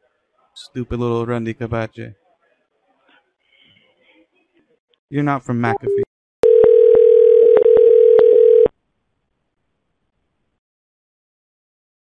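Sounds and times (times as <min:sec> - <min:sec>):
steady telephone line tone: 0:05.8 - 0:08.7.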